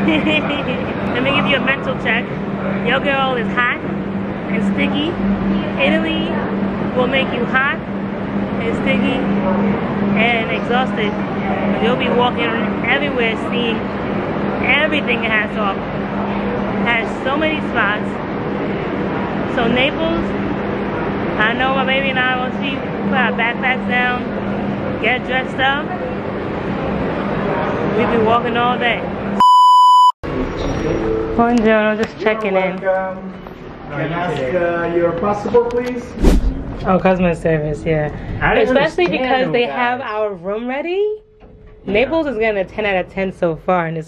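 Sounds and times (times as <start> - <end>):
steady low hum: 0.0 - 29.4
woman speaking: 41.9 - 44.0.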